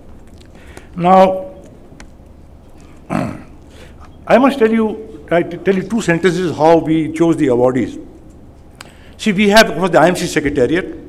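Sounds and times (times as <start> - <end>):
low background hum: 0.0 - 11.0
man clearing his throat: 3.1 - 3.6.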